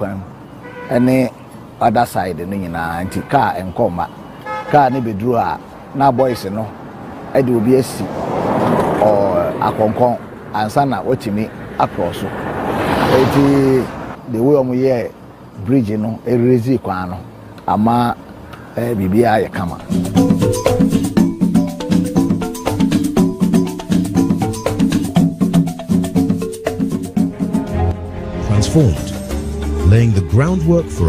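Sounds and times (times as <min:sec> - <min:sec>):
car horn toot: 0:00.5 - 0:01.3, 0:02.9 - 0:05.3
man speaking: 0:04.7 - 0:06.7, 0:09.0 - 0:12.4, 0:13.0 - 0:18.2, 0:18.8 - 0:20.0, 0:28.3 - 0:31.0
person speaking: 0:28.3 - 0:31.0.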